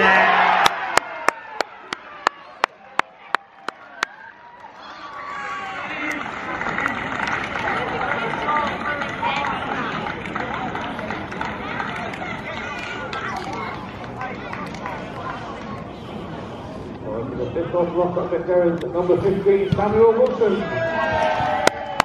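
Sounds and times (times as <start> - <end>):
voices talking and calling: 1.9 - 21.4.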